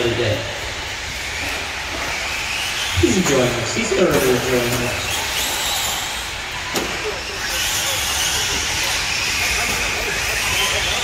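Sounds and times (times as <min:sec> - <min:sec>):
rc truck motor whine: 0:04.4 - 0:11.0.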